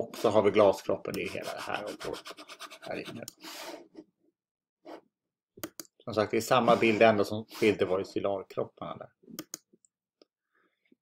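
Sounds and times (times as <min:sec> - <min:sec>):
computer mouse clicks: 0:05.6 - 0:05.9, 0:09.4 - 0:09.7.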